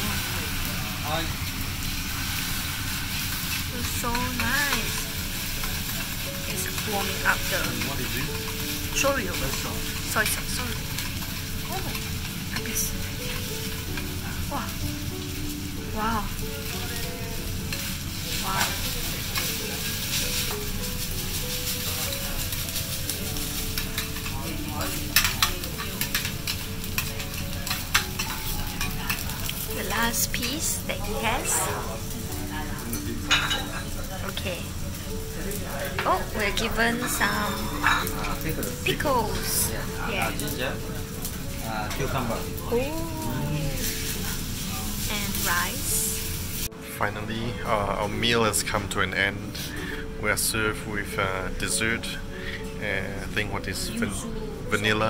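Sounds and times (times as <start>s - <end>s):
rice sizzling on a griddle: 0.0s - 55.0s.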